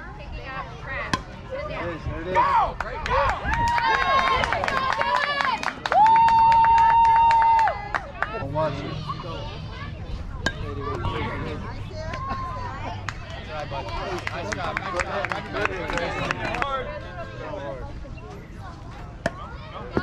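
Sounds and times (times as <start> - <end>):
high-pitched voices cheering: 3.3 - 7.9.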